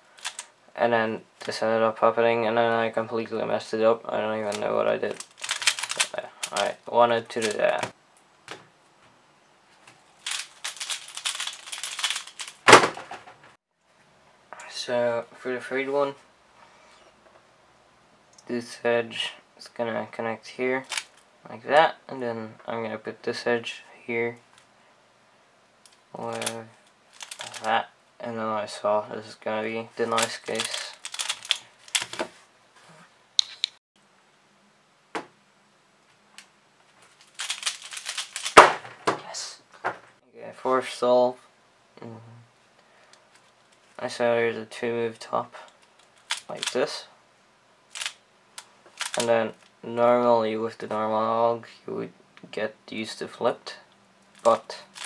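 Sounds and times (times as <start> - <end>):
puzzle cube clicking turns: 0.2 - 0.5, 4.5 - 6.8, 10.2 - 12.9, 20.8 - 21.2, 25.9 - 27.7, 30.0 - 32.3, 37.1 - 38.9, 45.7 - 46.8, 47.9 - 49.7, 54.3 - 55.0
puzzle cube snap: 37.4 - 38.9, 47.9 - 49.3.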